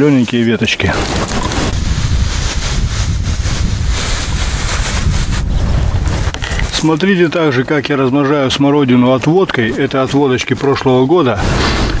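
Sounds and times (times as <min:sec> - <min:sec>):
wind buffeting microphone: 0:00.8 - 0:07.0.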